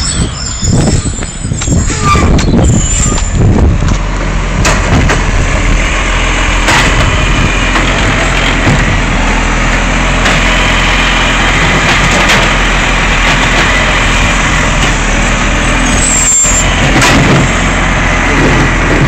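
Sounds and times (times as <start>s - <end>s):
garbage truck diesel engine: 0.0s - 19.0s
hydraulic arm lifting bin: 0.0s - 19.0s.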